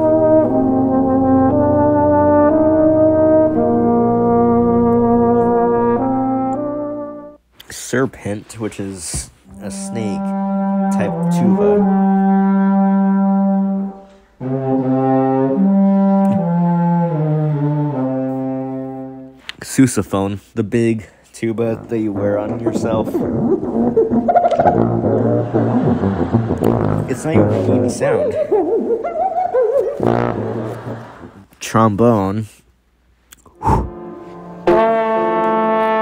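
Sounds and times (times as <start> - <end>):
low horn notes: 0.0 - 7.4, 9.5 - 19.4, 21.6 - 28.3, 30.0 - 31.5, 33.5 - 36.0.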